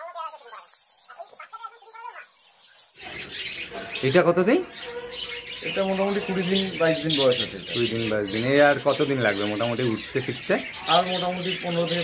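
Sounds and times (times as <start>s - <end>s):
man talking: 5.6s - 12.0s.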